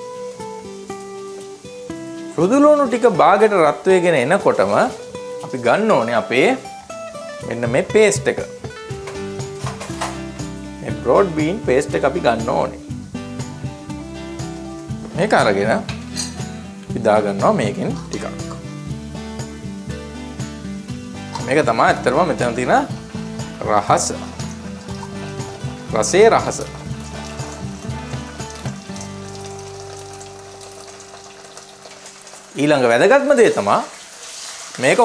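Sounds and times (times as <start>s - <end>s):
background music: 0.0s - 35.0s
garlic sizzling in hot oil: 0.0s - 35.0s
person talking: 2.4s - 6.7s, 7.4s - 8.6s, 10.8s - 12.8s, 15.1s - 16.0s, 16.9s - 18.6s, 21.4s - 23.0s, 23.6s - 24.4s, 25.9s - 26.8s
kitchenware clinking: 9.0s - 10.3s, 15.9s - 16.5s.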